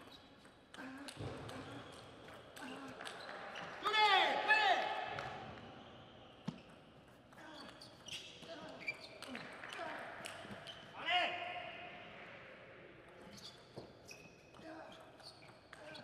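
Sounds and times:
shoes squeaking on floor: 6.4 - 9.5, 13.2 - 16.0.

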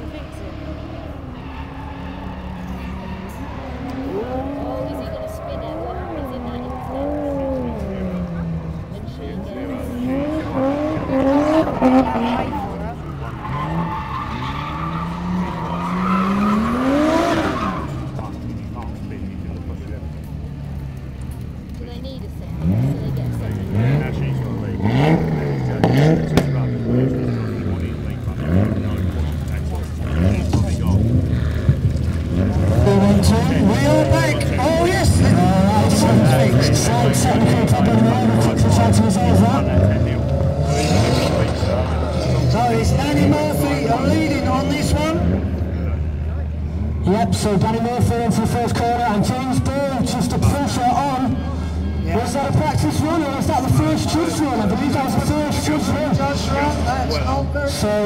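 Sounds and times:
car engines revving: 0.0 - 58.0
tyre squeal: 13.2 - 18.4.

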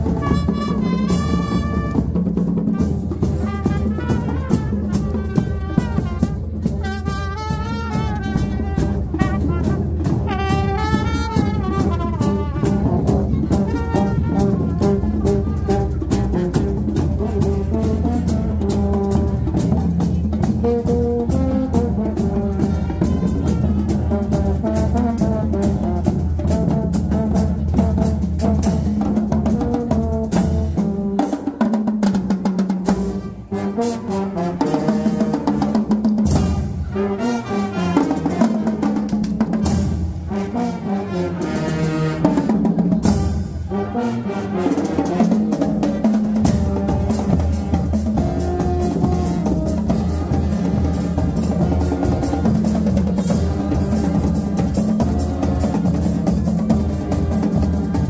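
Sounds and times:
brass section melody: 0.0 - 19.8, 20.4 - 31.5, 32.8 - 58.0
snare and bass drums: 0.0 - 33.4, 34.6 - 36.9, 41.4 - 43.7, 44.7 - 58.0.

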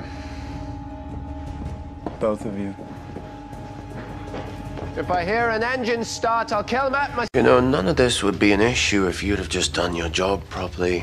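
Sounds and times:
low drone score: 0.0 - 7.3.

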